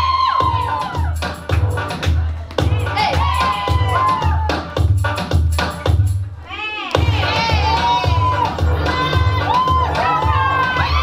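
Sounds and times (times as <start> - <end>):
audience shouting and cheering: 0.0 - 1.4, 2.2 - 4.8, 6.4 - 11.0
dance music with heavy bass beat: 0.0 - 6.3, 6.9 - 11.0.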